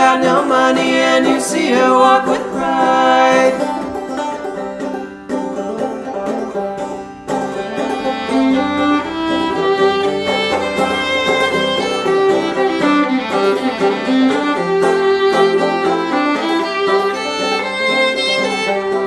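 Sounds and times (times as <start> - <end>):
bowed fiddle: 0.0 - 19.0
picked strings: 0.0 - 19.0.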